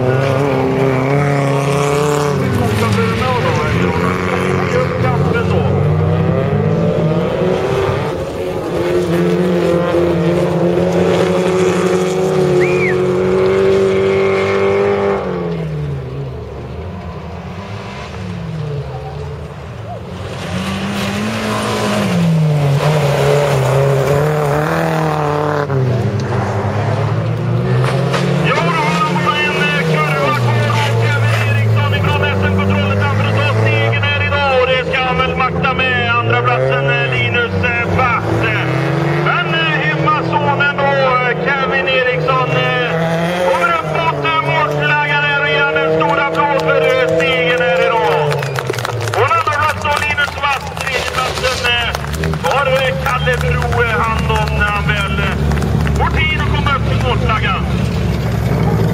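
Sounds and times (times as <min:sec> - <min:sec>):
race car engines revving: 0:00.0 - 0:58.9.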